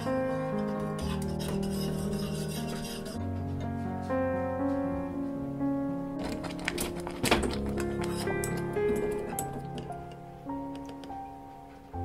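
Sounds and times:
whisk scraping a saucepan: 0.0s - 3.2s
background music: 0.0s - 12.0s.

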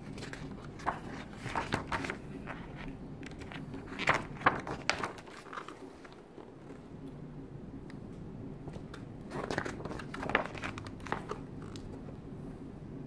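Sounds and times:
book pages turning: 0.0s - 6.8s, 8.7s - 12.0s
faint low hum: 0.0s - 13.0s.

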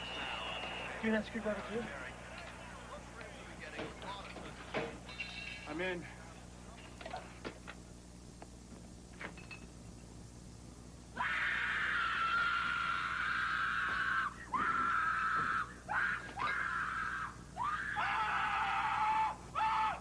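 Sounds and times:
person screaming: 11.2s - 20.0s.

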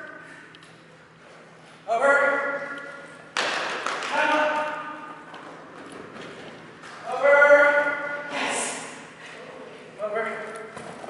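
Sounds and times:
man shouting cues: 1.9s - 2.9s, 4.0s - 5.2s, 7.0s - 8.9s.

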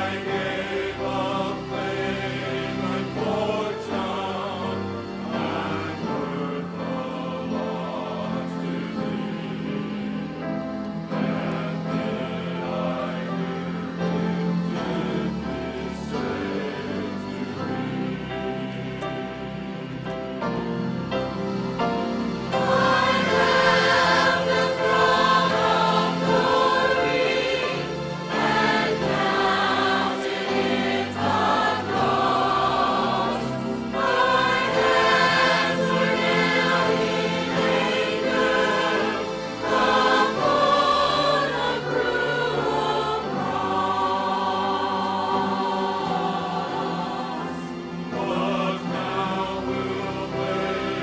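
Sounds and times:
mixed choir singing: 0.0s - 51.0s.

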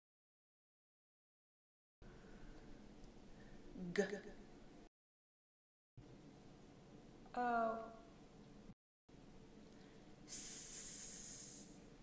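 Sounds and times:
person making hissing sound: 10.3s - 11.9s.

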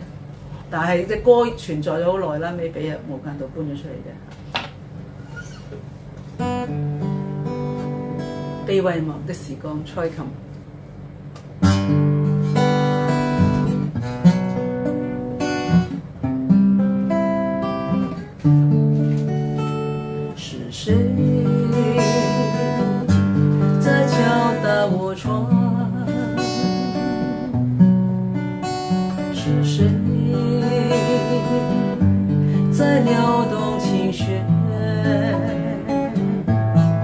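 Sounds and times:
acoustic guitar strumming chords: 6.1s - 8.8s, 11.2s - 37.0s.

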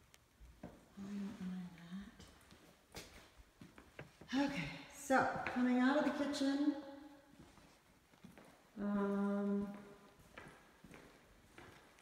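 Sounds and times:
faint footsteps on hardwood floor: 0.0s - 6.4s, 7.2s - 12.0s.

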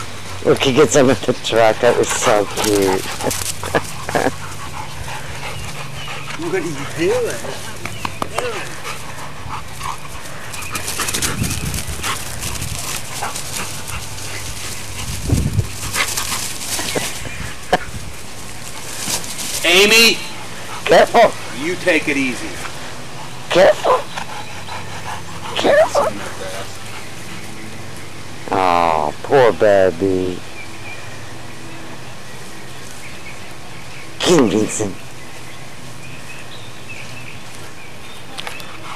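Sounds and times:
outdoor background noise: 0.0s - 38.9s
dogs yipping and whimpering: 1.8s - 8.1s, 22.9s - 28.2s.

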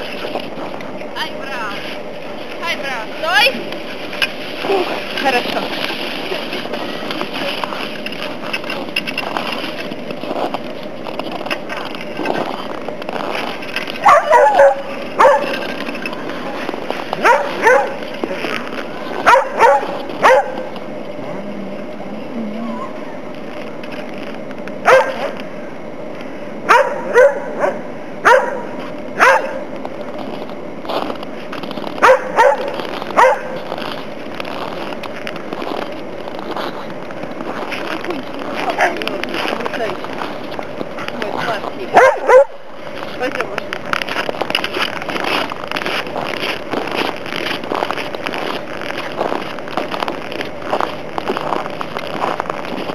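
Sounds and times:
steady background hiss: 0.0s - 52.9s
dogs barking: 14.0s - 15.7s, 17.2s - 18.1s, 19.2s - 20.7s, 24.8s - 25.4s, 26.7s - 29.7s, 32.0s - 33.6s, 41.9s - 42.6s.

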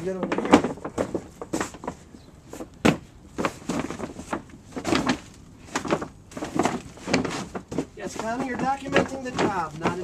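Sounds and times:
plastic liner crinkling and rustling: 0.0s - 10.0s.

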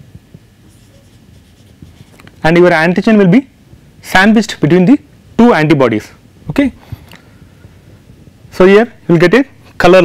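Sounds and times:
marker pen drawing on whiteboard: 0.7s - 2.3s.

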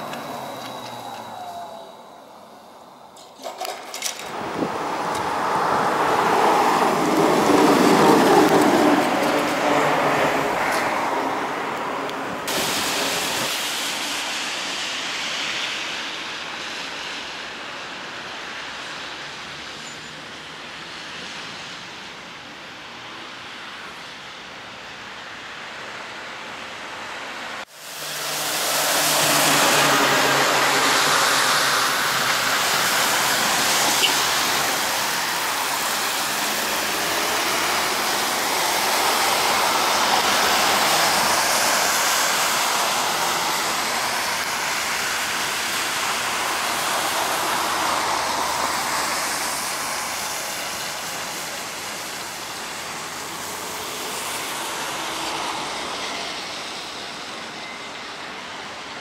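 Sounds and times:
traffic passing: 0.0s - 59.0s
tyre hiss on wet road: 0.0s - 59.0s.

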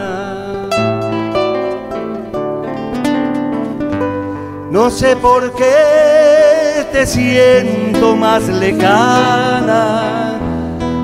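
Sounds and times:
acoustic guitar plucking: 0.0s - 11.0s.

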